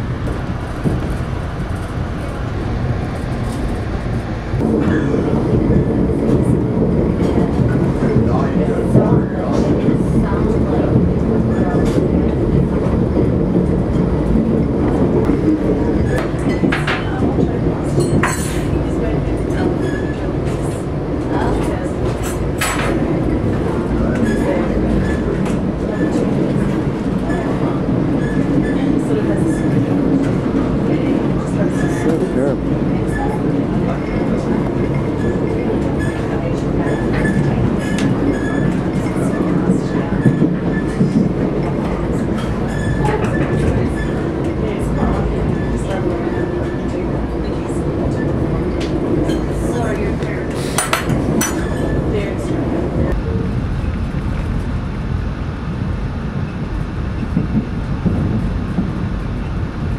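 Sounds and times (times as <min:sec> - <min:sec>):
moving train rumble: 0:00.0 - 0:59.9.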